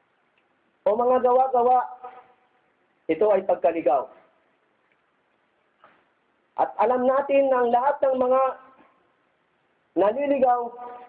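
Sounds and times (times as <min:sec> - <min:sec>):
man preaching: 0:00.8 - 0:02.4, 0:03.1 - 0:04.4, 0:06.6 - 0:08.9, 0:09.9 - 0:11.0.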